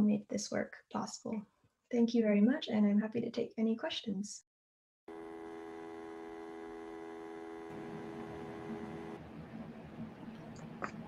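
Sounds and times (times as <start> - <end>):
stacked electronic hum: 5.1 - 11.0.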